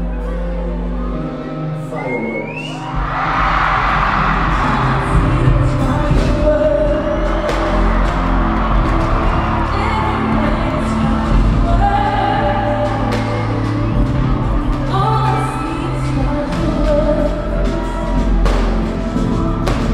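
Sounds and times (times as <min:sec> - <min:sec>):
crowd cheering and screaming: 0:00.0 - 0:19.9
music with heavy bass: 0:03.0 - 0:19.9
person singing: 0:03.9 - 0:09.0.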